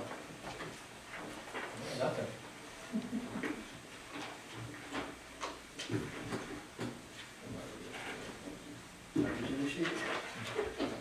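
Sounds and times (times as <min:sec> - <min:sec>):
low room background noise: 0:00.0 - 0:11.0.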